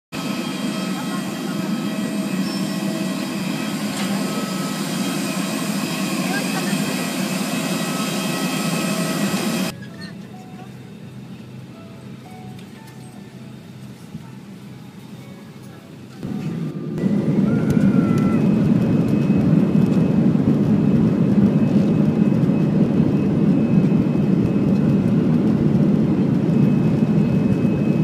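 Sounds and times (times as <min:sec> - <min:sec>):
aircraft cabin hum: 0:00.2 - 0:09.8, 0:12.7 - 0:28.0
jet airliner whine and rumble: 0:00.2 - 0:28.0.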